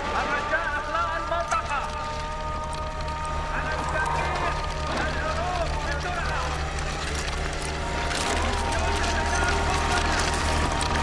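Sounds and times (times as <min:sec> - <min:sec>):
low hum and drone: 0:00.0 - 0:11.0
voices calling out: 0:00.0 - 0:11.0.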